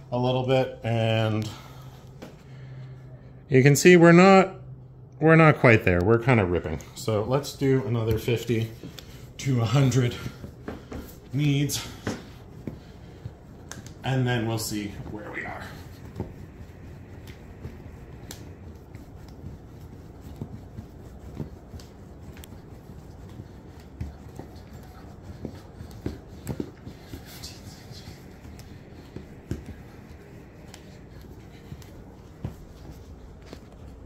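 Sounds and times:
dough being kneaded: 6.2s - 34.0s.

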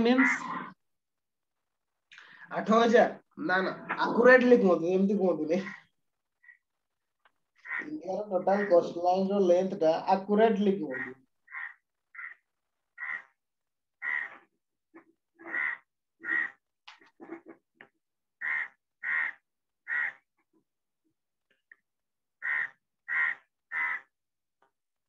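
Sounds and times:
bird calling: 7.6s - 8.0s, 10.9s - 12.4s, 13.0s - 13.3s, 14.0s - 14.4s, 18.4s - 20.2s, 22.4s - 24.1s.

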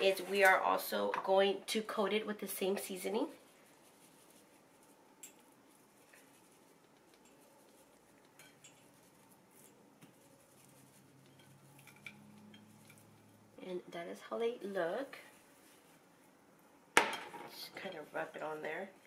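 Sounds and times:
spice shaker rattling: 3.5s - 13.4s
hands handling fish on a plate: 3.6s - 13.4s.

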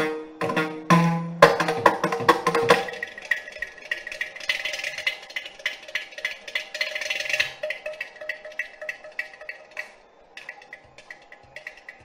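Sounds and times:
clay-pot drum strokes: 0.0s - 12.0s.

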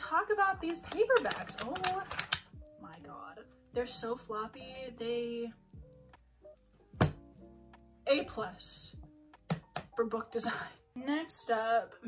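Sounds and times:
soft background music: 0.0s - 12.0s
book thunk: 7.0s - 7.3s.

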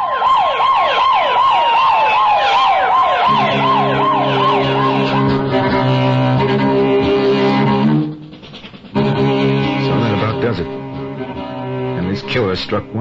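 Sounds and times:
siren whooping: 0.0s - 8.3s
low bowed-string music: 3.3s - 8.3s, 8.9s - 13.0s.

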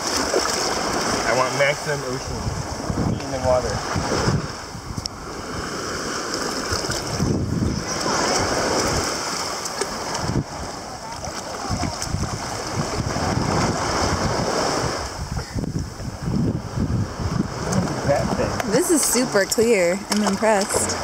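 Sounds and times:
small waves lapping on sand: 0.0s - 21.0s
wind buffeting microphone: 0.0s - 21.0s.

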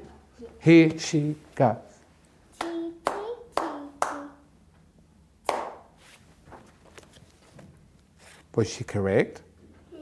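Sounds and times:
child clapping a rhythm: 2.5s - 4.5s, 5.4s - 5.9s.

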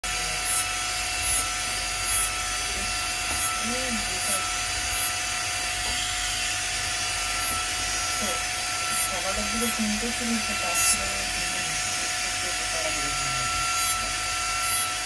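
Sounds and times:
rotary handpiece whining: 0.1s - 12.0s, 12.6s - 15.0s.

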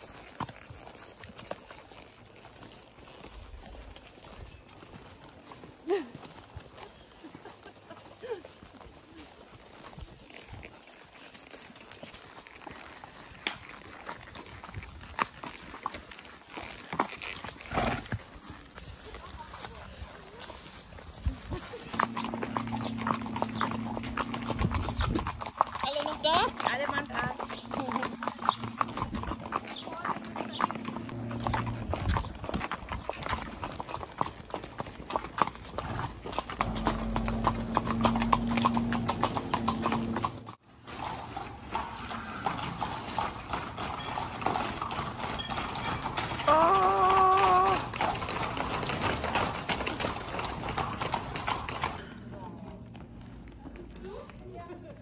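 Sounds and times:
hooves clip-clopping on pavement: 0.0s - 55.0s.

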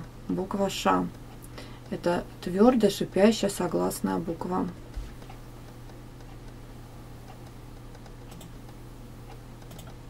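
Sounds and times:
low electrical hum: 0.0s - 10.0s
faint computer control clicks: 7.3s - 10.0s.

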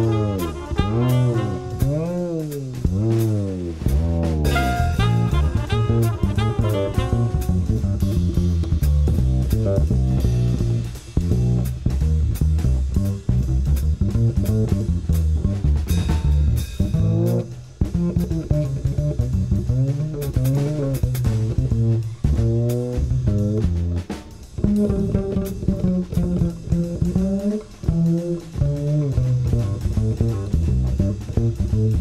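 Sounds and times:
drum kit: 0.0s - 32.0s
plucked double bass: 0.0s - 32.0s.

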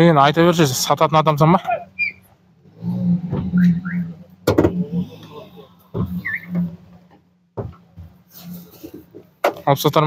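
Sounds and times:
men talking: 0.0s - 2.1s, 9.5s - 10.0s.

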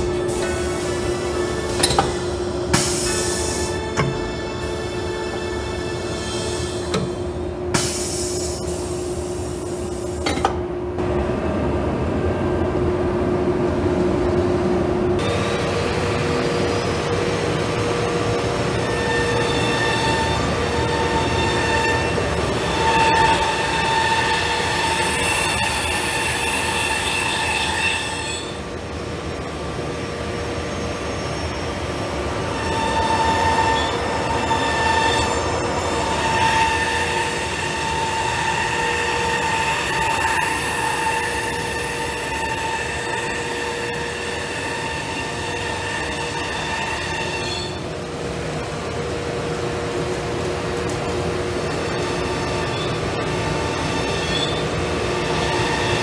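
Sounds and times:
high machine whine: 0.0s - 56.0s
router machine running: 15.2s - 28.2s.

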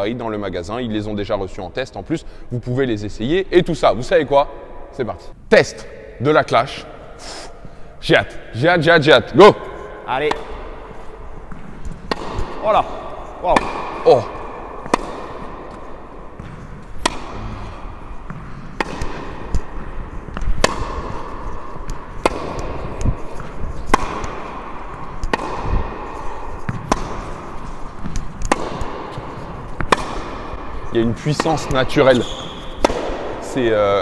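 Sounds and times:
racket striking tennis ball: 9.4s - 34.0s
tennis ball bouncing: 9.6s - 34.0s.

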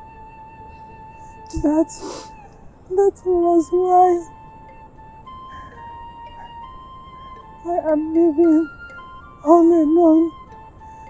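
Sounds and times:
soft film music with held notes: 0.0s - 11.0s.

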